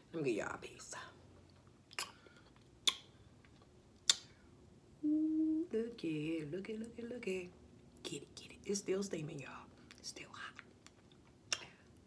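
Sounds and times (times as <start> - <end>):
woman humming mm: 5.0 - 6.0.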